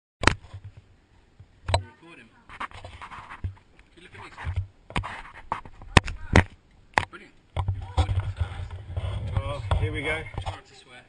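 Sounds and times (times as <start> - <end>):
muffled voices: 1.7 - 11.0
hands rubbing on camera: 2.5 - 6.3, 7.7 - 10.6.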